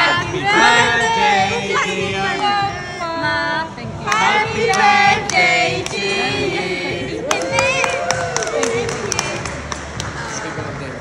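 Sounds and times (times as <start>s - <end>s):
group singing a birthday song: 0.0s - 10.3s.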